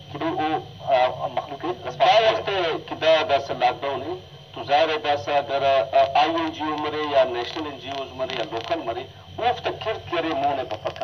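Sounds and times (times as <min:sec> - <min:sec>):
person talking: 0:00.2 - 0:11.0.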